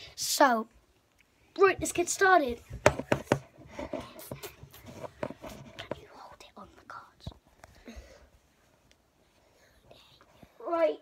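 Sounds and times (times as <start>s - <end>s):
phone handling knocks and rustles: 2.8s - 3.6s.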